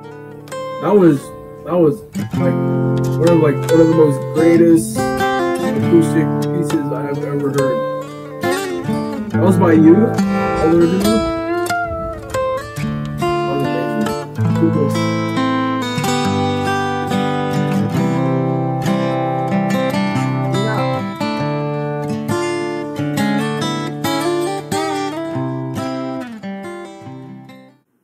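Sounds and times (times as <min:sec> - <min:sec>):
fingerstyle acoustic guitar: 0:00.0 - 0:10.6, 0:12.4 - 0:27.7.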